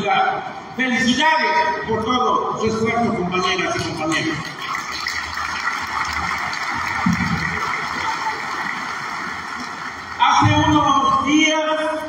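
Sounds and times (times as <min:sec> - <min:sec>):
audience clapping: 0:03.4 - 0:10.9.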